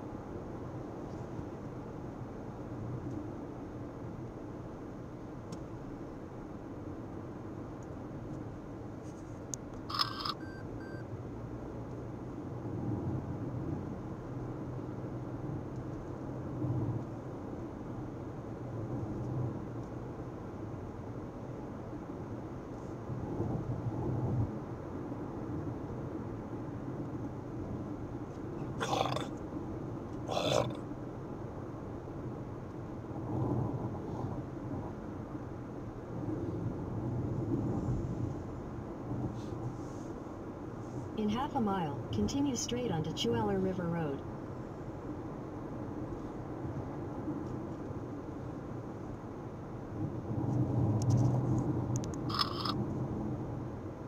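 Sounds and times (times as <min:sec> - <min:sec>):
car interior road rumble: 0:00.0 - 0:54.0.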